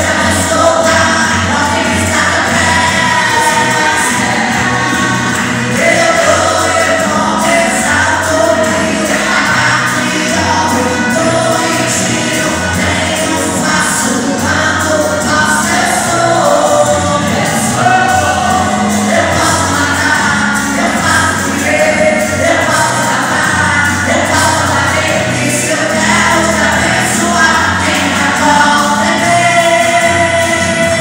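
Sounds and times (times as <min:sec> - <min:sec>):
low bass line: 0:00.0 - 0:31.0
man singing gospel song: 0:00.0 - 0:31.0.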